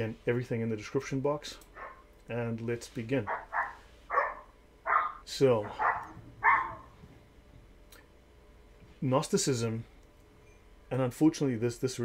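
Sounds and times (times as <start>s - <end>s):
sharp animal call: 3.3s - 6.9s.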